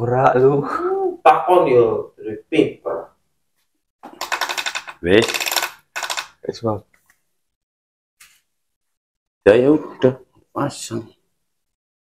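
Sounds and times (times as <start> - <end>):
rapid metallic clicking rattle: 4.2 - 6.3.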